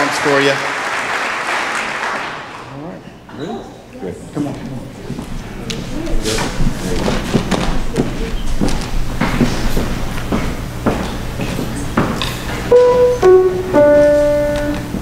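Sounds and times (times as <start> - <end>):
footsteps and shuffling on stage: 5.0 - 15.0
piano notes: 12.4 - 15.0.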